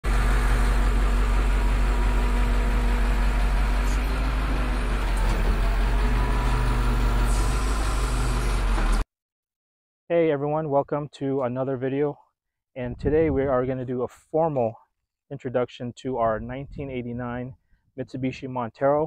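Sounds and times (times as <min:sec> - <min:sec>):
truck engine idling: 0:00.0 - 0:09.0.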